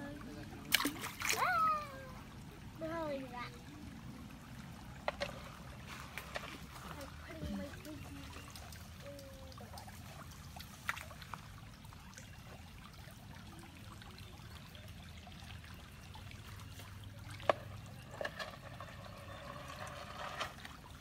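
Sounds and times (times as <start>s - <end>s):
creek trickling: 0.0s - 21.0s.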